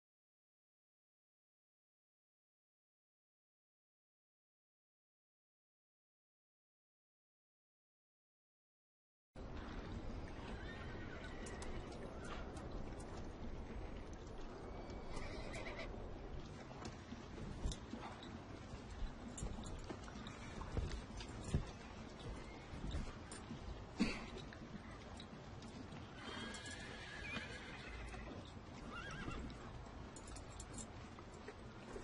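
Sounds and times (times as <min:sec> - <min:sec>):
hoof clicks: 0:09.4 - 0:32.0
horse whinny: 0:10.4 - 0:12.3, 0:14.7 - 0:16.0, 0:26.1 - 0:29.6.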